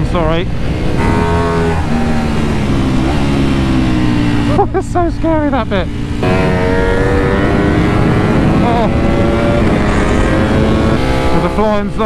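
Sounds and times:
motorcycle engine pulling hard: 0.0 - 12.0
rushing wind: 0.0 - 12.0.

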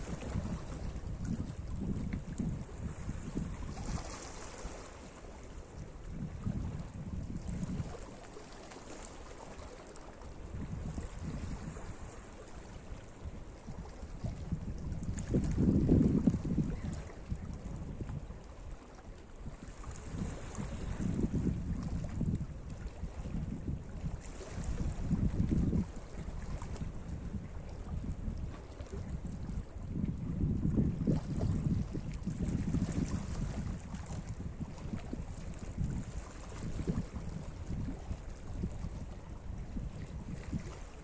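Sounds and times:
wind rumbling on microphone: 0.0 - 41.0.

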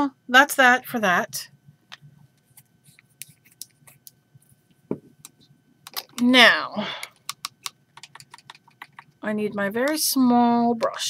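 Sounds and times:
clicks and taps of brushes: 7.0 - 9.2.

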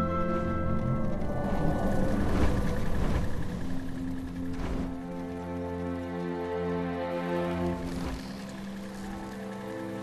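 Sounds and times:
film score held notes: 0.0 - 10.0.

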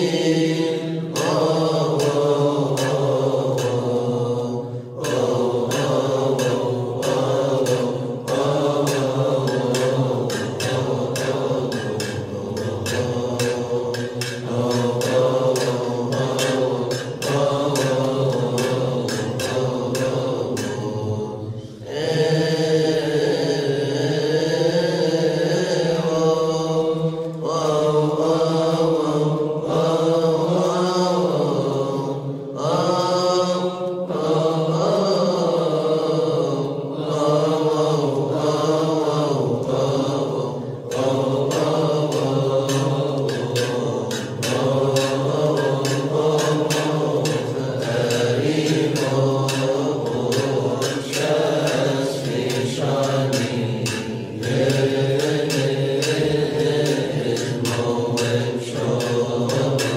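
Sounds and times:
monks chanting: 0.0 - 59.9.

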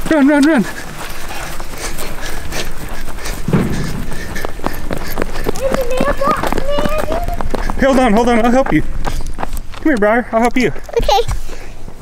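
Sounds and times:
running footsteps: 0.0 - 12.0.

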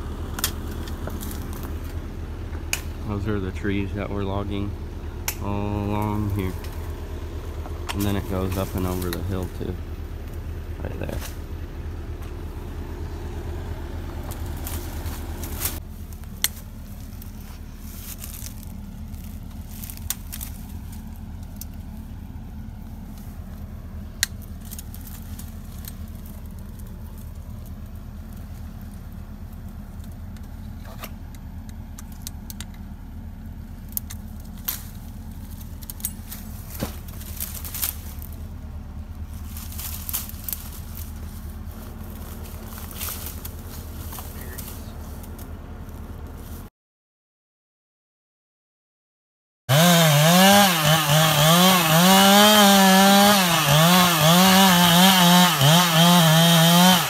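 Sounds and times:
engine idling with low hum: 0.0 - 46.7, 49.7 - 57.0.

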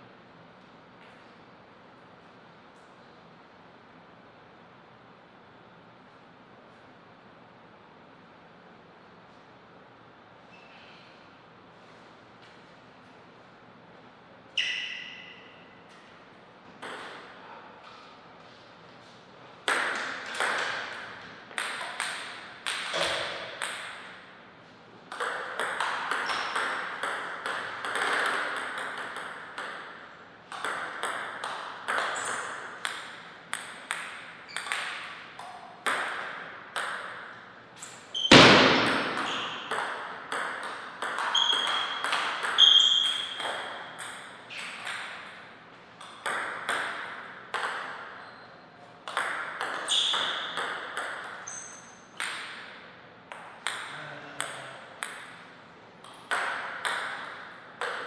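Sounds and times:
short high squeaks: 10.5 - 11.0, 14.6 - 15.7, 41.3 - 42.0, 42.6 - 43.4, 49.8 - 50.6, 51.4 - 52.1
table tennis ball bouncing: 16.8 - 17.3, 19.6 - 24.2, 25.1 - 37.5, 38.1 - 58.0.

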